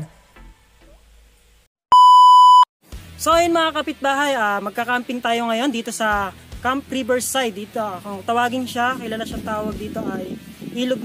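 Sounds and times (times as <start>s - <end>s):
loud electronic beep: 1.9s - 2.7s.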